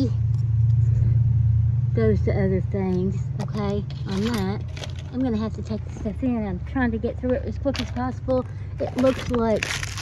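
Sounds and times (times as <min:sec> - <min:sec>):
motor running low rumble: 0:00.0 - 0:10.0.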